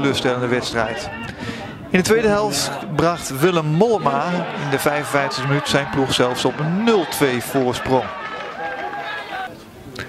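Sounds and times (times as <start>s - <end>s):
players shouting: 0.0s - 9.5s.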